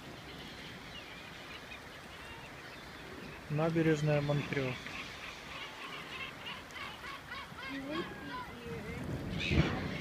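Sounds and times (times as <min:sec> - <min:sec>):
gulls calling: 0:00.0 - 0:10.0
outdoor background hiss: 0:00.0 - 0:10.0.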